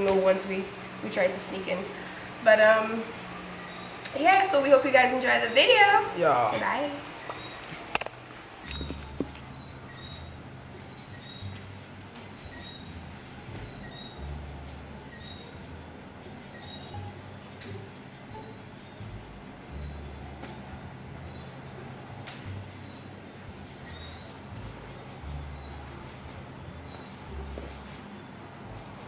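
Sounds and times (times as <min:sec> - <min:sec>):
faint high whine: 0:00.0 - 0:29.0.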